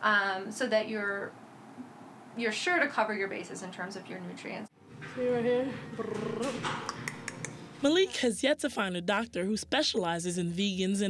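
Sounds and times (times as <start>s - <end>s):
low steady background noise: 0.0s - 6.2s.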